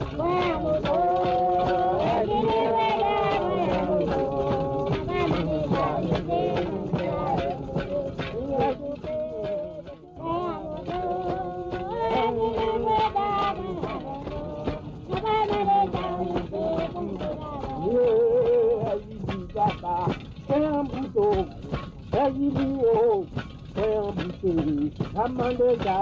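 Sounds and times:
percussion strikes: 0.0 - 26.0
voices singing: 0.0 - 26.0.

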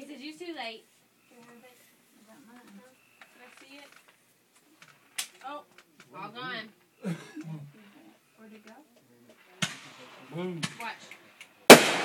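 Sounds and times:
quiet voices: 4.6 - 11.7
firework bang: 11.7 - 12.0.

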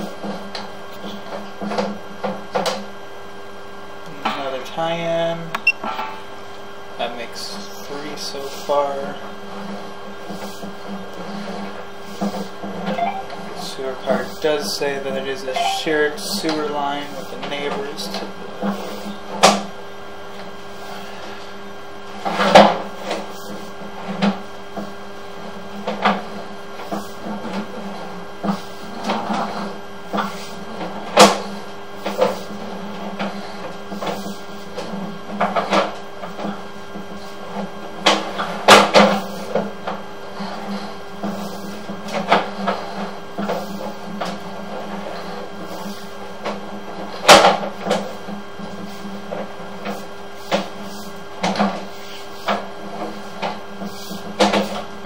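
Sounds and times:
steady hum: 0.0 - 55.0
cable and reel clacking: 7.0 - 19.7, 25.6 - 55.0.

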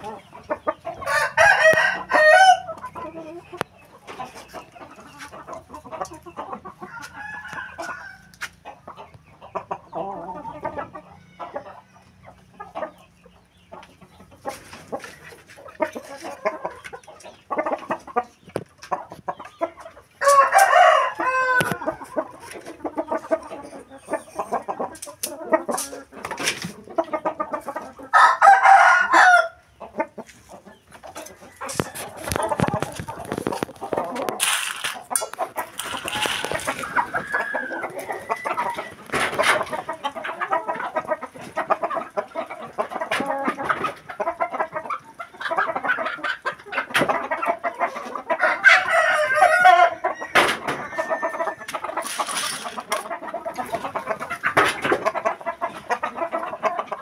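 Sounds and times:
roosters crowing: 0.0 - 8.9, 20.0 - 26.1, 27.6 - 30.2, 31.2 - 42.2, 47.0 - 55.0
chickens clucking: 0.0 - 57.0.

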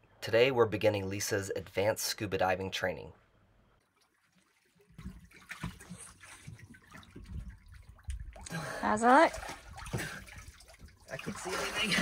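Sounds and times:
seawater splashing and lapping: 3.8 - 12.0.

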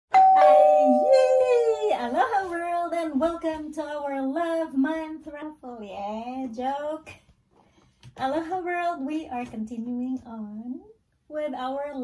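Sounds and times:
steady chime-like tones: 0.2 - 1.7.

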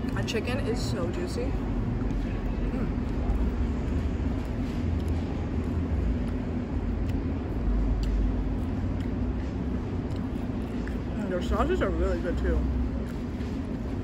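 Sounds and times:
faint constant hum: 0.0 - 14.0
low background rumble: 0.0 - 14.0.

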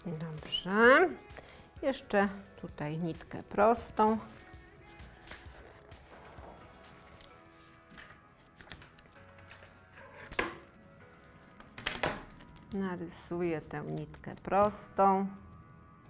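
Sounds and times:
quiet background music: 0.0 - 16.0
handling noises on a table: 5.2 - 12.8.

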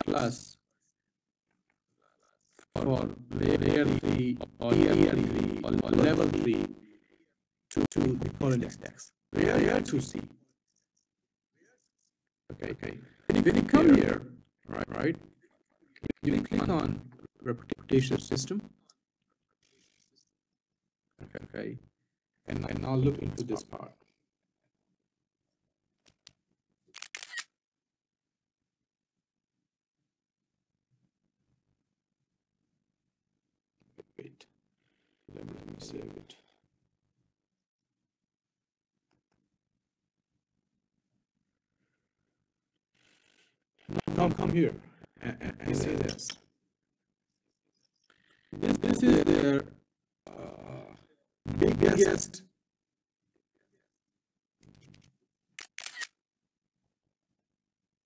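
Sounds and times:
camera shutter clicks: 27.0 - 27.4, 55.6 - 56.1.

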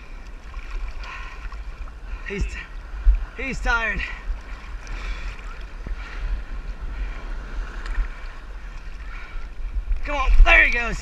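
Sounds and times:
water sloshing and lapping: 0.0 - 11.0
wind rumbling on microphone: 0.0 - 11.0.

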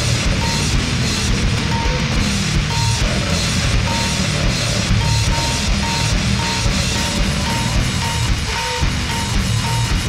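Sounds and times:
heavily distorted metal music: 0.0 - 10.0
high electronic beep: 0.2 - 10.0.

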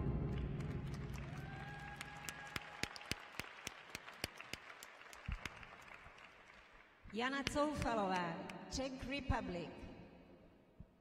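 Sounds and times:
music: 0.0 - 1.8
scattered hand claps: 0.2 - 8.6.

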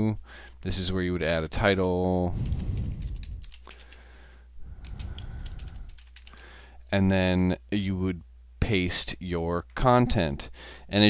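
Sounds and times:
typing on computer keyboard: 2.4 - 4.0, 4.8 - 6.6.

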